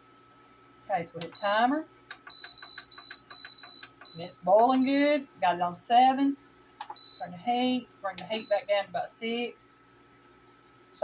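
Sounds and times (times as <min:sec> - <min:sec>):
short high beeps: 0:01.2 - 0:01.6, 0:02.2 - 0:05.0
finger tapping touch pad: 0:01.2 - 0:04.9.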